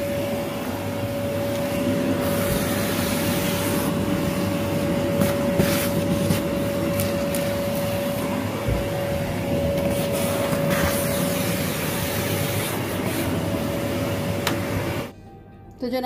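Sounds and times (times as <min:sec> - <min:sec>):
vacuum cleaner whining: 0:00.0 - 0:15.1.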